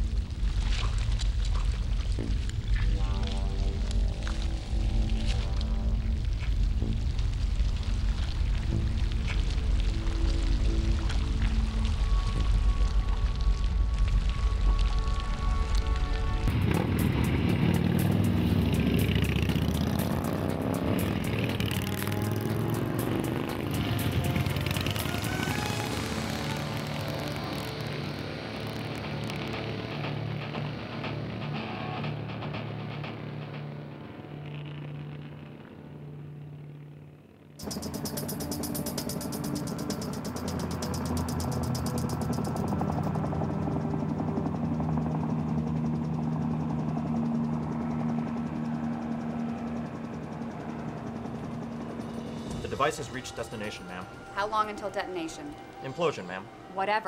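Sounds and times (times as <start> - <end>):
music: 0.0 - 57.0
steady engine-like sound: 10.7 - 57.0
motorcycle engines passing: 16.4 - 31.4, 34.0 - 57.0.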